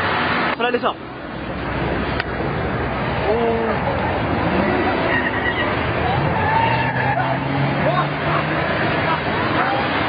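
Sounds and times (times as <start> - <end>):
minibus engine: 0.0 - 10.0
onlookers shouting and talking: 3.2 - 10.0.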